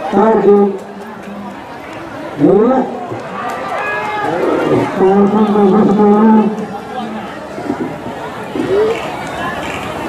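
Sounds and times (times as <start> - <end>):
outdoor crowd noise: 0.0 - 10.0
man calling out: 4.3 - 6.6.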